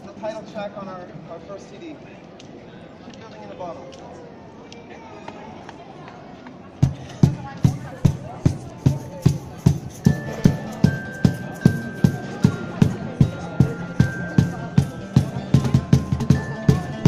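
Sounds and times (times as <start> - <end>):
street crowd murmur: 0.0 - 17.0
cajon steady beat: 6.8 - 17.0
high held melody line: 9.7 - 17.0.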